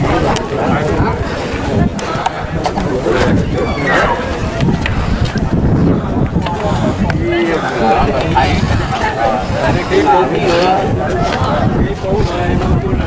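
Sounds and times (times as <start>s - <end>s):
people talking: 0.0s - 13.0s
steady low rumble: 4.0s - 13.0s.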